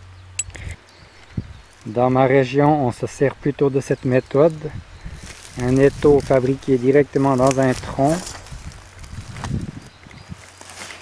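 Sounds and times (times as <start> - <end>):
footsteps on leaf litter: 1.1 - 11.0.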